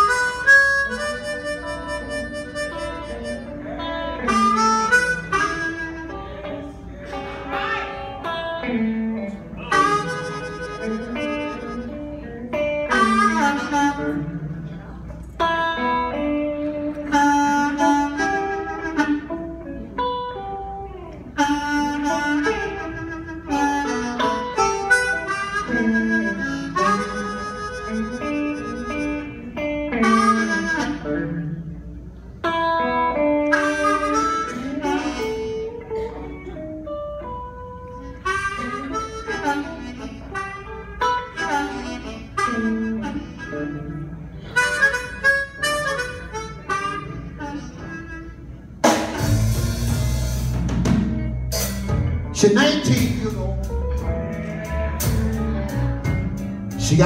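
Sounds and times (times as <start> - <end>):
blues harmonica: 0.0 - 57.0.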